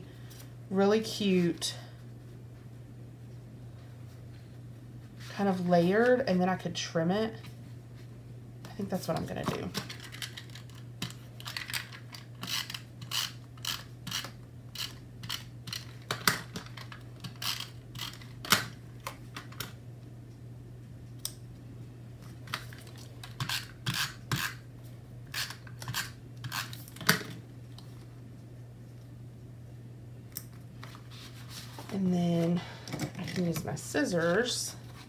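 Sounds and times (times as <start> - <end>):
steady low hum: 0.0 - 35.0.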